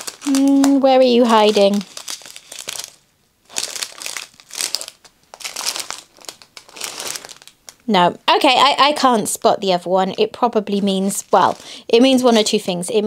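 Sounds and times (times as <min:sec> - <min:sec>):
plastic bags crinkling: 0:00.0 - 0:07.9, 0:10.8 - 0:12.6.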